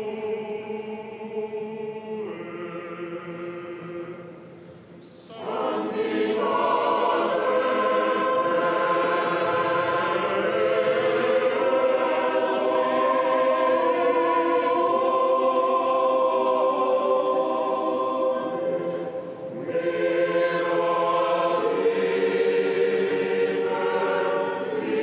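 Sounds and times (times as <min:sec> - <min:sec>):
choir singing chant: 0:00.0 - 0:25.0.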